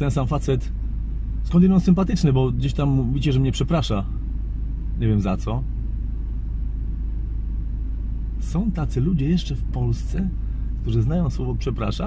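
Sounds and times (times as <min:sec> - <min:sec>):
car interior low rumble: 0:00.0 - 0:12.0.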